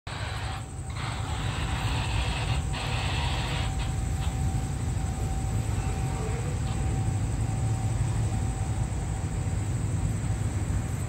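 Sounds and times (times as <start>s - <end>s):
distant diesel train rumble: 0.1s - 11.0s
steady high hiss: 0.1s - 11.0s.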